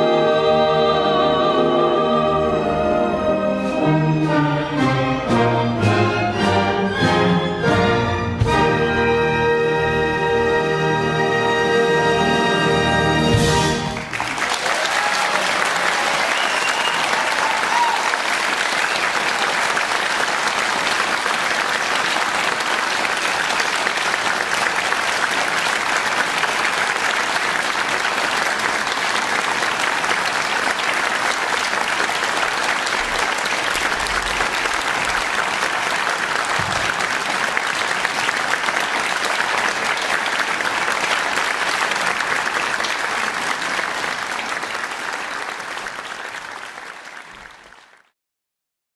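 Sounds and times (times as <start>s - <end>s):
audience applauding: 13.5s - 48.2s.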